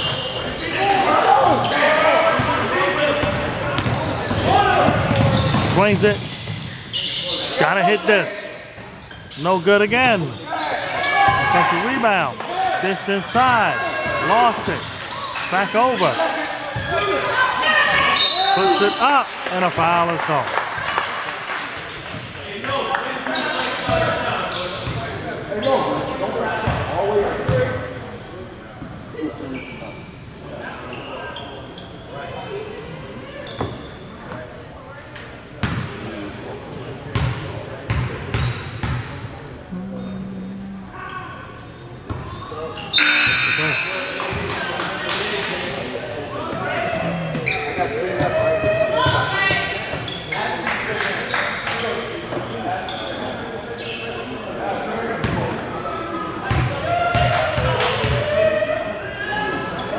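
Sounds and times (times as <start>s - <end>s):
players' voices echoing: 0.2s - 20.6s, 35.9s - 49.8s.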